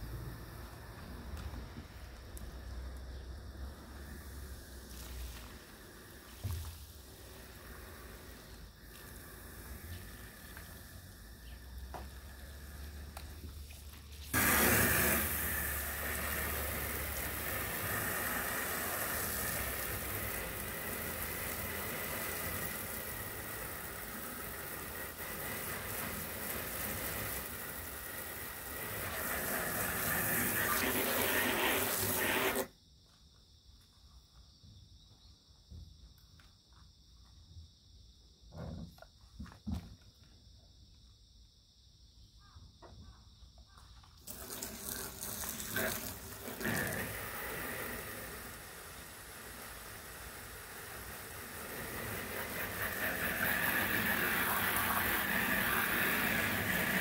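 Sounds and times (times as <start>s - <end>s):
garden hose spraying water: 0.0s - 32.7s, 44.0s - 57.0s.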